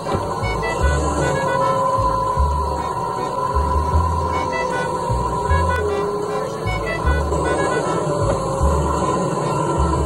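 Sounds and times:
arcade game machine music: 0:00.0 - 0:02.2, 0:04.3 - 0:09.8.

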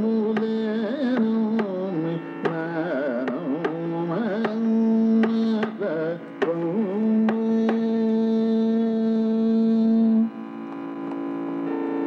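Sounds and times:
person singing long note: 0:00.0 - 0:12.0
steady pitched drone: 0:00.0 - 0:12.0.

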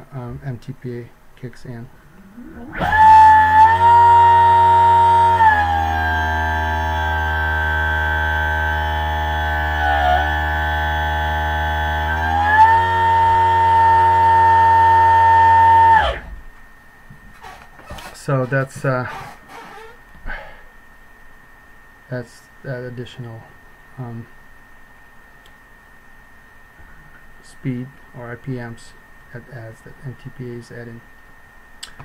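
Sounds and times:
electric motor whining: 0:02.4 - 0:16.4.

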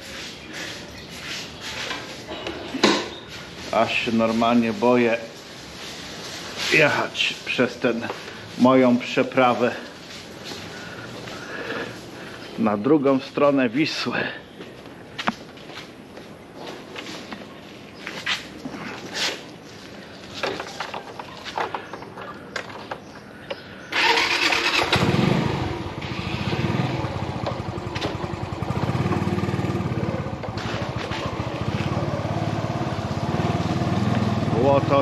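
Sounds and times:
scooter engine starting and running: 0:21.2 - 0:35.0.

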